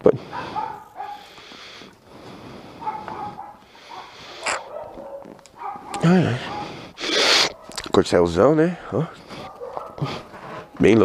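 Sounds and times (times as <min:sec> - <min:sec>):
dog barking: 0:00.2 - 0:01.3, 0:02.8 - 0:07.8, 0:09.4 - 0:10.3
dog whining: 0:02.8 - 0:07.8.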